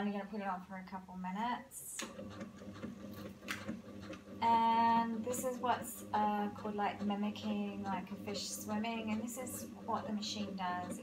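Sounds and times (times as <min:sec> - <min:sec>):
machine motor humming: 0:02.0 - 0:11.0.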